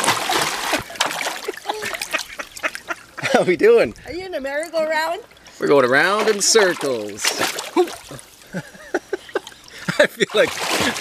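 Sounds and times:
swimmer splashing pool water: 0.0s - 11.0s.

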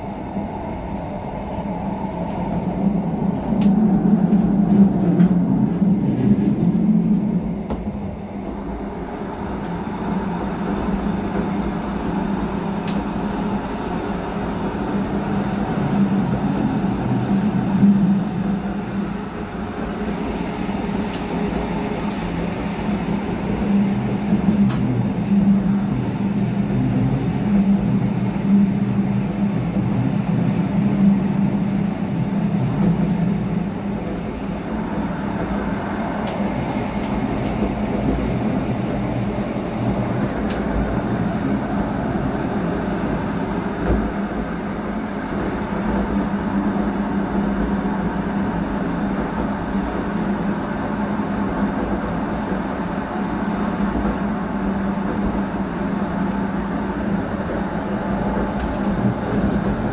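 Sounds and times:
train rolling rumble: 0.0s - 59.9s.

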